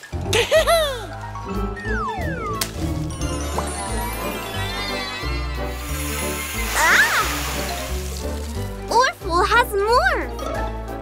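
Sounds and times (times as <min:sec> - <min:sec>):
cartoon background music: 0:00.0 - 0:11.0
hissing water spray: 0:05.7 - 0:08.9.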